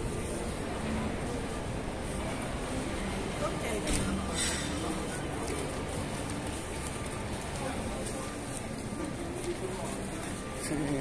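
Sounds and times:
passers-by talking: 0:00.0 - 0:11.0.

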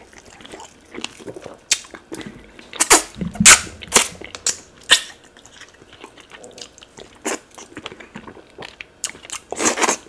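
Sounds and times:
crackles and snaps of eating fish: 0:00.0 - 0:10.0.

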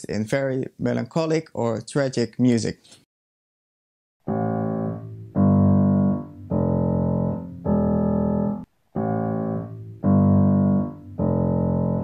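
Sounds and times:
piano chords: 0:04.2 - 0:12.0.

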